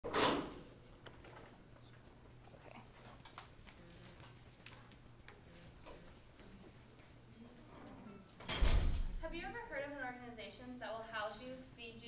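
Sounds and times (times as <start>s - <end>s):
room noise hum: 0.1s - 12.0s
faint clicks and shuffles: 1.0s - 8.2s.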